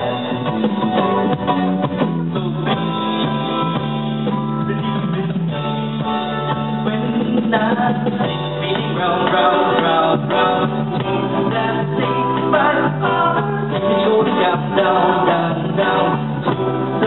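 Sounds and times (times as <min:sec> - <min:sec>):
live band playing guitars: 0:00.0 - 0:17.0.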